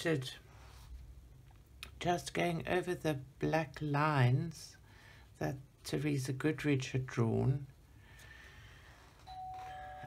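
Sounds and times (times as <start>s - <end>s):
two-note doorbell chime: 9.3s - 10.0s.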